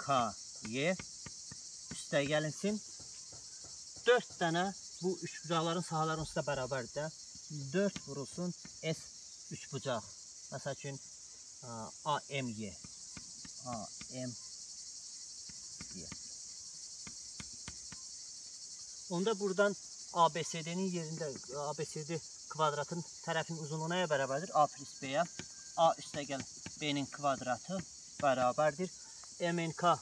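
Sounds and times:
high-pitched insect chorus: 0:00.0 - 0:30.0.

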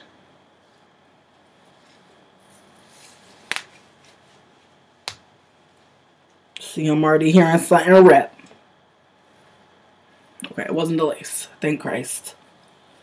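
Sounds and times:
rustling of wig being pulled on: 0:00.6 - 0:05.2
sharp snaps: 0:05.0 - 0:05.3.

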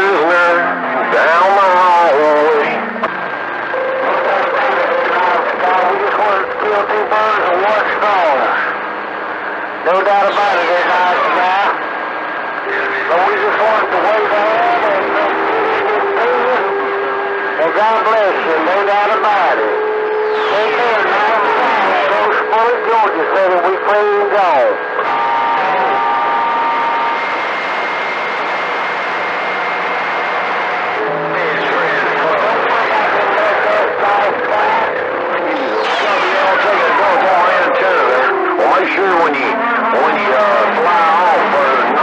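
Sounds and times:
garbled radio voices: 0:00.0 - 0:42.0
radio static hiss: 0:00.0 - 0:42.0
steady radio tones: 0:00.0 - 0:42.0
falling radio whistles: 0:19.4 - 0:22.5.

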